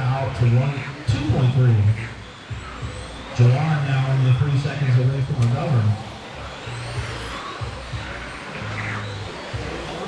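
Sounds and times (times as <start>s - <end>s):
man speaking over loudspeaker: 0.0s - 2.2s, 3.4s - 6.1s
rc car motors whining: 0.0s - 10.0s.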